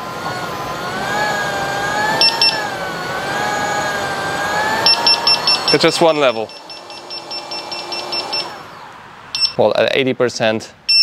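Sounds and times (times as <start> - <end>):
electric motor whining: 0.0 - 9.5
double beep alarm: 2.2 - 2.6, 4.8 - 8.6, 9.4 - 9.6.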